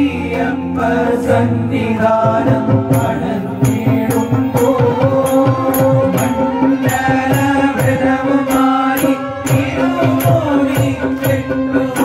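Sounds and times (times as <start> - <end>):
keyboard drone: 0.0 - 12.0
men singing devotional song: 0.0 - 12.0
drum beat: 2.2 - 12.0.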